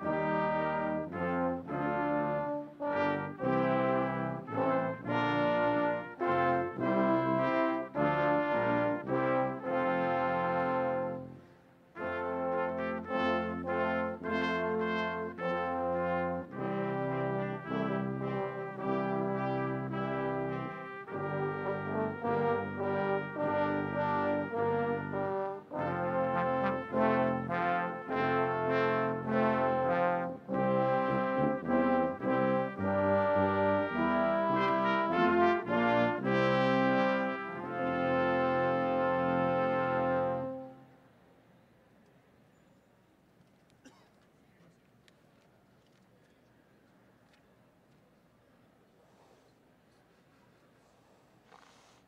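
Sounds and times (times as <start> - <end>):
brass ensemble playing chords: 0.0 - 41.2.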